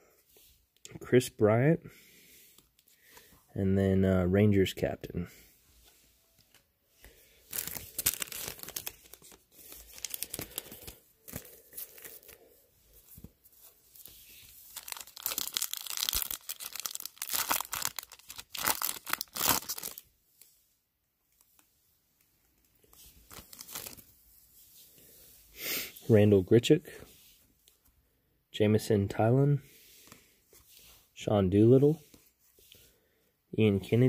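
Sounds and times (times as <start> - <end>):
wrapper rustling: 7.4 - 20.0, 22.5 - 24.4
card pack wrapper ripping: 7.5 - 12.4, 14.6 - 20.0, 23.3 - 24.0.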